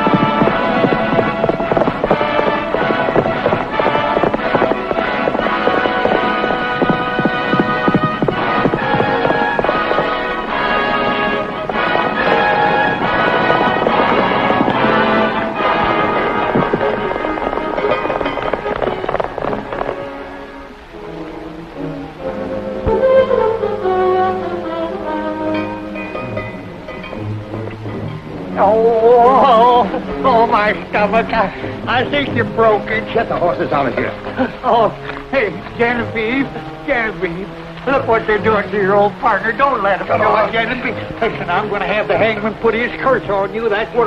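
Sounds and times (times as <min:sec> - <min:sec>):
galloping hoofbeats: 0:00.0 - 0:44.0
orchestral music: 0:00.0 - 0:44.0.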